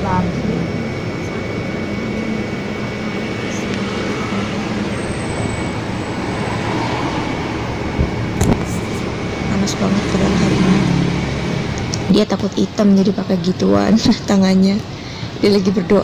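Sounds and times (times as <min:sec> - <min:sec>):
traffic rushing by: 0:00.0 - 0:16.0.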